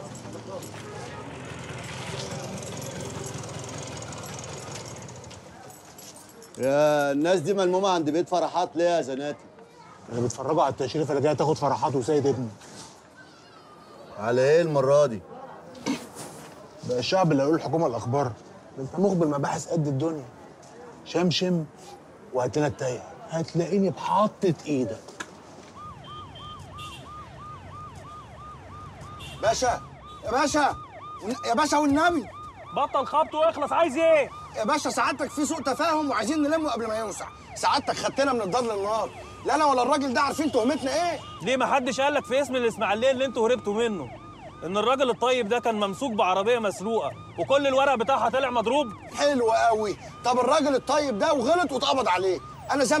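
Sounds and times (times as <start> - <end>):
low traffic rumble: 0.0 - 53.0
scooter engine puttering: 0.2 - 5.6
police siren yelping: 25.7 - 53.0.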